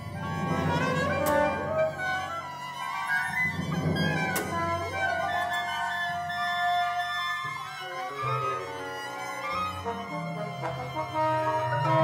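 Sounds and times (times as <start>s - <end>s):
chamber orchestra sustained notes: 0.0s - 12.0s.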